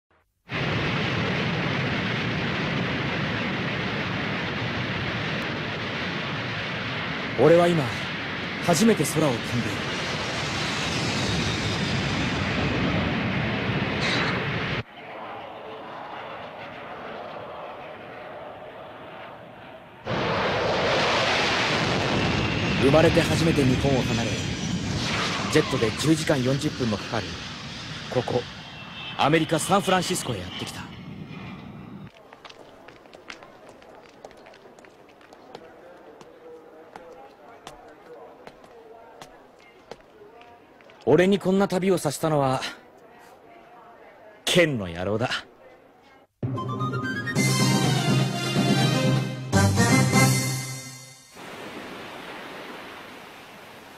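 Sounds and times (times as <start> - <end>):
jet engine rush: 0.5 - 32.1, 51.4 - 53.9.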